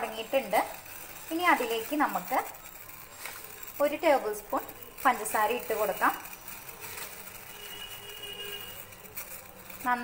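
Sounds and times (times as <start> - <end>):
water boiling in saucepan: 0.0 - 10.0.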